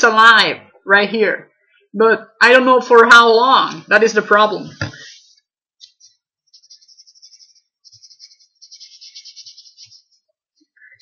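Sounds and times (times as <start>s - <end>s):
drawing tool scratching: 5.1s - 10.3s.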